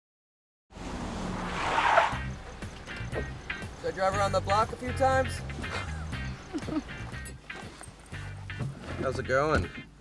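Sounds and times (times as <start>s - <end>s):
car engine hum: 0.7s - 10.0s
tyre and road noise: 0.7s - 10.0s.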